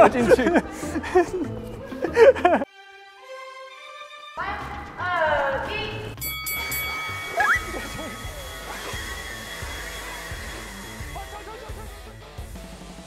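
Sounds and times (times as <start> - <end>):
background music: 0.0 - 13.0
leaf blowers running: 6.6 - 13.0.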